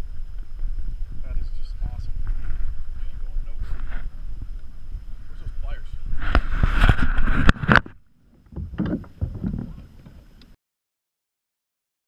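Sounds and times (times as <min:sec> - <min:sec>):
wind and water noise: 0:00.0 - 0:10.6
camera handling noise: 0:06.2 - 0:08.0.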